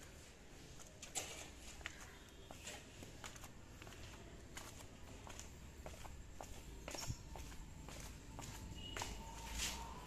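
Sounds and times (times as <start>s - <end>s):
footsteps on concrete stairs: 0.8s - 9.9s.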